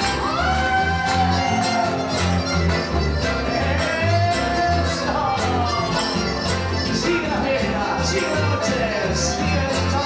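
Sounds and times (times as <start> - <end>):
accordions playing melody: 0.0 - 10.0
acoustic guitar: 0.0 - 10.0
pulsing bass line: 0.0 - 10.0.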